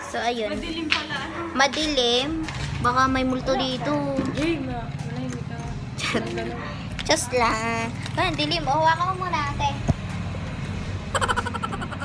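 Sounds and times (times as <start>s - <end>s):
vehicle engine idling: 1.8s - 12.0s.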